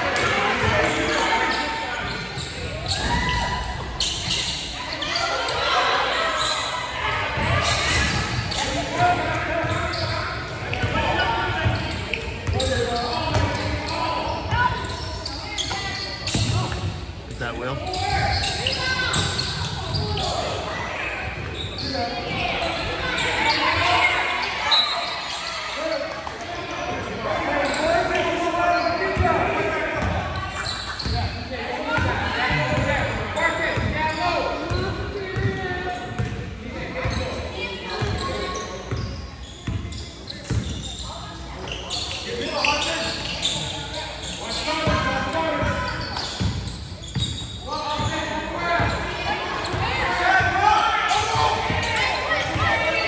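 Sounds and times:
echoing voices: 0.0 - 38.3.

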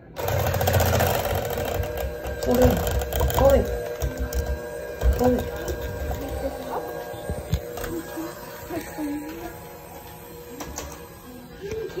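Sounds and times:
electric hand mixer whine: 0.0 - 12.0.

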